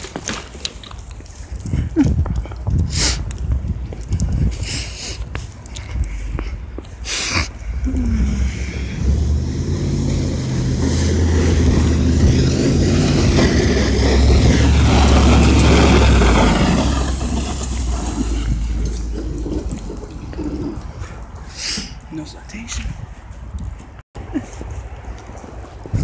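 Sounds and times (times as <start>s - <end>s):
snowplow truck plowing snow: 8.2s - 20.3s.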